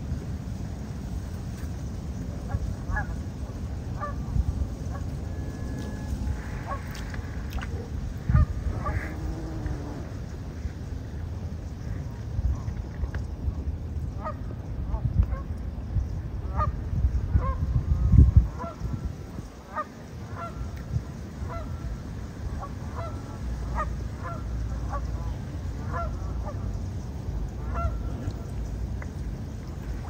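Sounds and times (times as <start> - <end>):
wind rumble on microphone: 0.0 - 30.0
waterfowl honking: 4.0 - 4.2, 4.8 - 10.1, 19.7 - 20.6, 21.4 - 21.7, 22.6 - 25.2, 25.8 - 26.7, 27.6 - 28.2.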